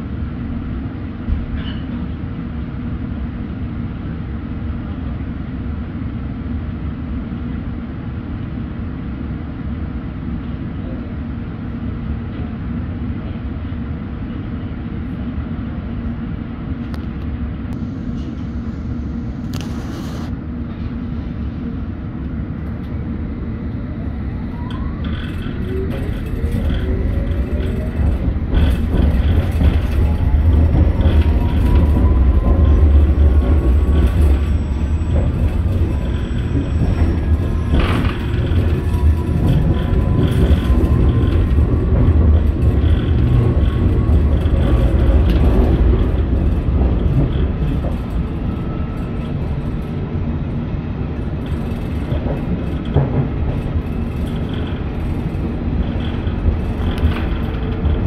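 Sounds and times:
wheel and track rumble: 0.0s - 8.6s, 10.0s - 58.0s
train motor whine: 24.5s - 50.0s.

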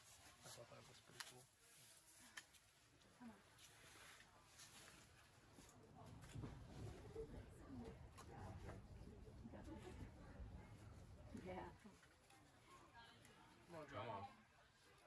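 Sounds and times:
faint indistinct voices: 0.0s - 15.0s.

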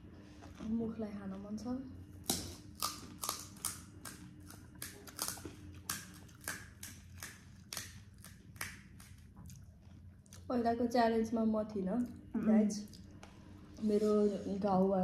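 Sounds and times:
chewing crisp shells: 2.5s - 10.5s.

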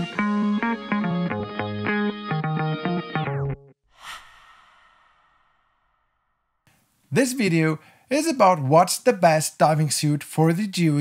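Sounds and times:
breathy whoosh effect: 3.8s - 6.7s.

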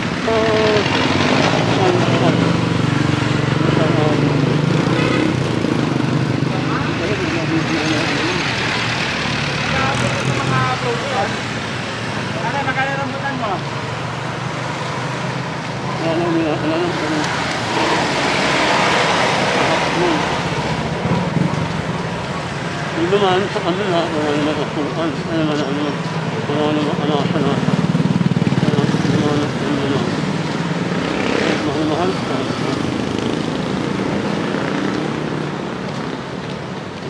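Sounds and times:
voices: 0.0s - 14.1s, 14.8s - 33.5s
road traffic noise: 0.0s - 37.0s
vehicle passing: 0.0s - 37.0s.

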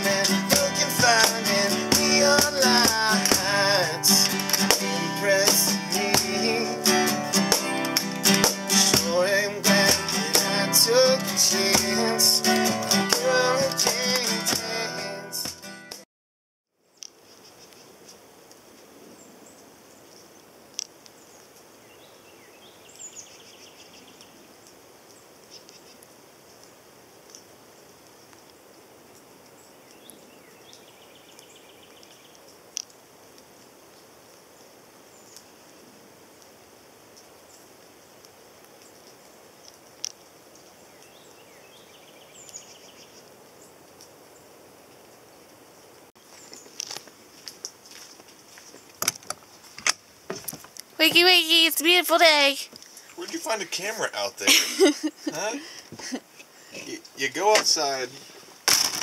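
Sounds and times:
steady hiss: 0.0s - 14.8s
faint birdsong: 19.0s - 32.6s, 34.4s - 35.8s, 37.1s - 46.8s.

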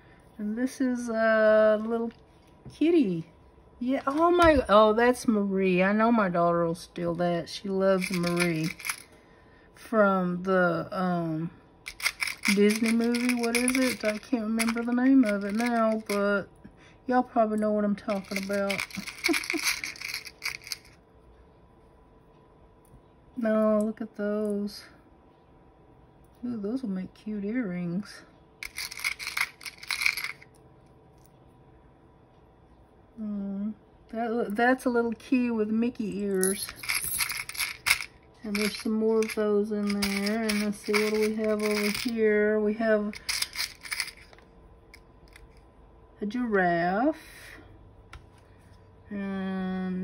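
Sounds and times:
metal charms clinking: 8.0s - 9.1s, 11.9s - 16.2s, 18.1s - 21.0s, 28.6s - 30.4s, 36.1s - 42.2s, 43.1s - 44.4s.

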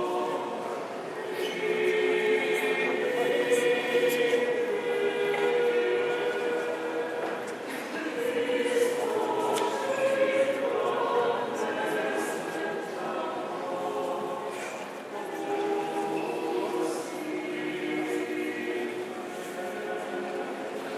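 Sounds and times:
choir chanting: 0.0s - 20.9s.

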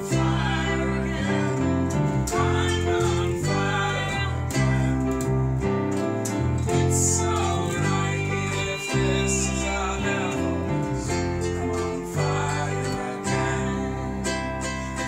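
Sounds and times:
electric bass: 0.0s - 15.0s
electric keyboard: 0.0s - 15.0s
strummed acoustic instrument: 0.0s - 15.0s.

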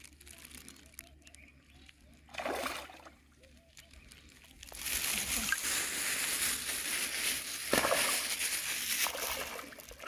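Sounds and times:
water lapping and dripping: 1.9s - 10.0s.

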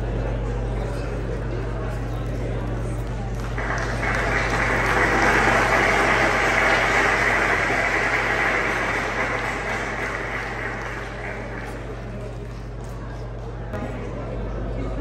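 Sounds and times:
audience applauding: 3.3s - 12.8s.

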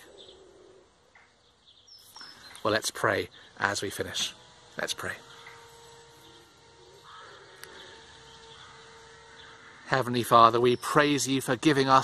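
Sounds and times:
low cooing bird call: 0.0s - 2.7s, 5.2s - 11.1s
high bird chirps: 1.1s - 3.6s, 4.6s - 9.9s.

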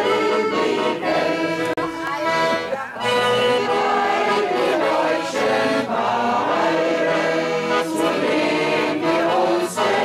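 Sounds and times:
accordion: 0.0s - 10.0s
group singing folk song: 0.0s - 10.0s.

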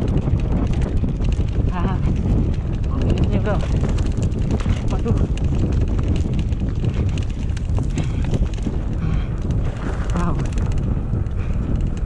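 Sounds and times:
bike clicking and rattling: 0.0s - 12.0s
tyres rumbling on dirt: 0.0s - 12.0s
wind on microphone: 0.0s - 12.0s.

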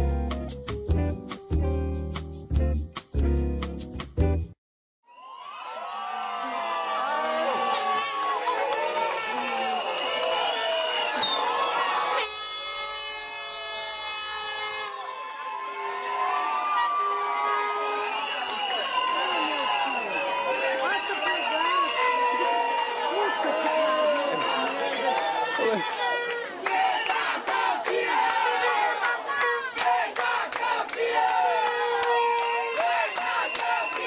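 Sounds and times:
crowd shouting and cheering: 5.1s - 34.0s
handheld horn blaring: 8.0s - 15.0s, 25.7s - 26.7s.

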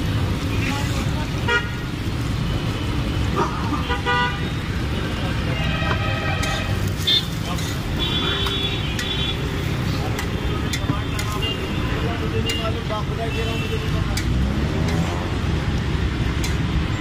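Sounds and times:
street traffic rumble: 0.0s - 17.0s
vehicle horns honking: 3.8s - 4.6s, 5.4s - 9.7s.

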